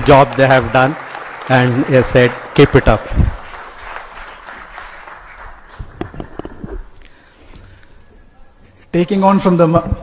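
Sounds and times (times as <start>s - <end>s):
audience applauding: 0.0s - 6.9s.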